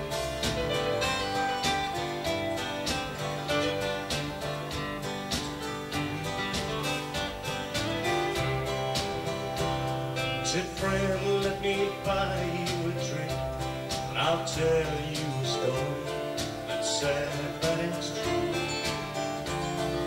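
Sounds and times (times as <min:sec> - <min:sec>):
live country band: 0:00.0 - 0:20.0
strummed acoustic guitar: 0:00.0 - 0:20.0.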